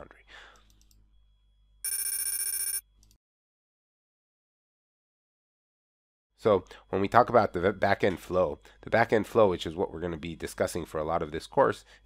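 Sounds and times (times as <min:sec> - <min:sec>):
ringing electronic chime: 0:01.8 - 0:02.9.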